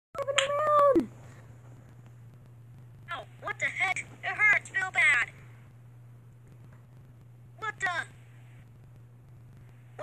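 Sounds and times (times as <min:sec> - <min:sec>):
faint low hum: 0:00.2 - 0:10.0.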